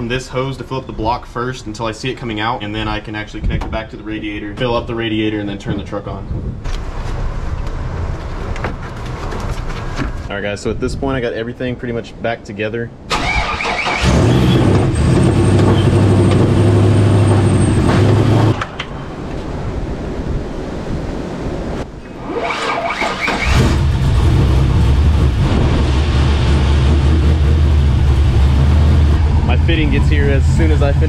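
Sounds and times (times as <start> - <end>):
car engine idling: 23.2 - 31.0.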